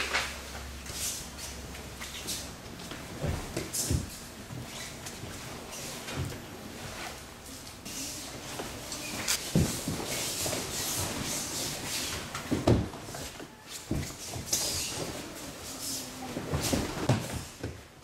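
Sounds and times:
cloth rustling and swishing: 0:00.8 - 0:17.4
bodies thumping on mat: 0:03.0 - 0:04.7, 0:09.4 - 0:11.3, 0:12.5 - 0:15.2, 0:16.4 - 0:17.8.

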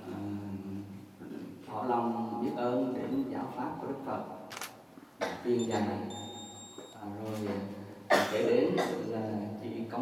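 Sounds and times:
man talking into microphone: 0:05.4 - 0:06.3, 0:07.0 - 0:10.0
high-pitched electronic tone: 0:05.6 - 0:07.0.

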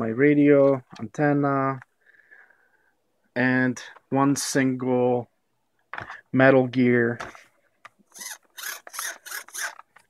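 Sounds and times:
servo gear train grinding: 0:08.1 - 0:10.0.

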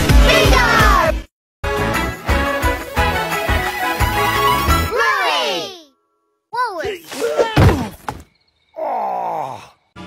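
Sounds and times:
sharp thunk: 0:07.5 - 0:08.3.

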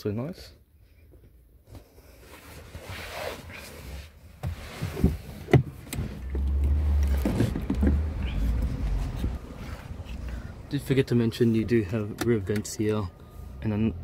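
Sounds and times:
deep rumble: 0:06.2 - 0:12.1.

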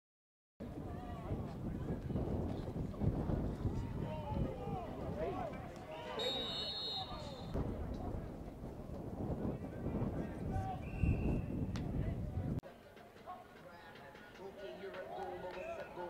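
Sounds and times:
people shouting and talking: 0:00.6 - 0:16.0
short high whistle: 0:06.2 - 0:07.5.

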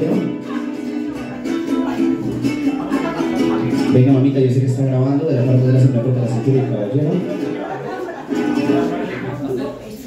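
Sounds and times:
mariachi guitars strumming: 0:00.0 - 0:10.0.

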